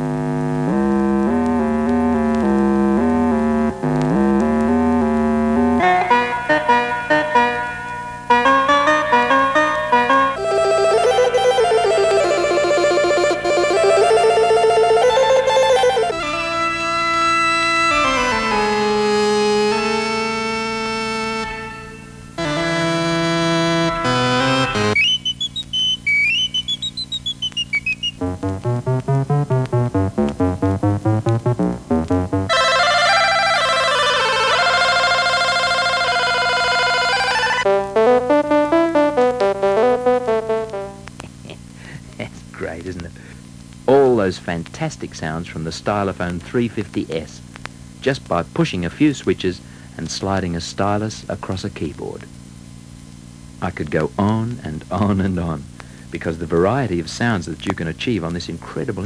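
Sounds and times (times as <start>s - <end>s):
stylus synthesizer notes: 0.0s - 32.6s, 37.6s - 41.1s.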